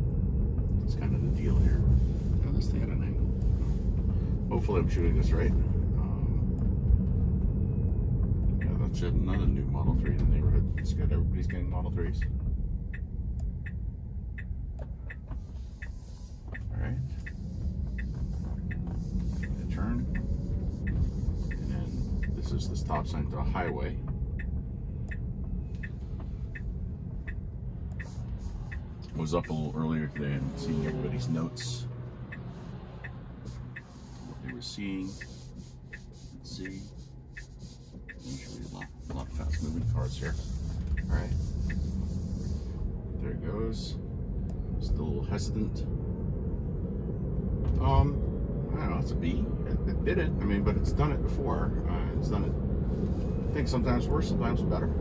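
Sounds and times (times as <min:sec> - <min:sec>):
low car cabin rumble: 0:00.0 - 0:55.0
turn signal ticking: 0:00.0 - 0:55.0
high hiss in car cabin: 0:33.4 - 0:44.0.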